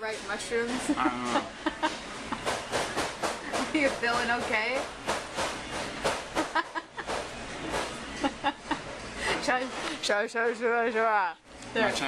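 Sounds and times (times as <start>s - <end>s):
room noise: 0.0s - 10.2s
person laughing: 0.9s - 2.4s, 6.4s - 7.2s.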